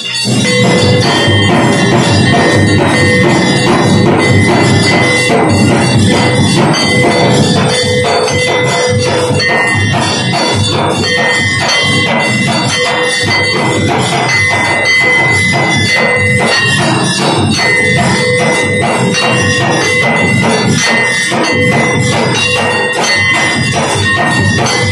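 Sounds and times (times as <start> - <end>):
hand bell ringing rapidly: 0.0 - 24.9.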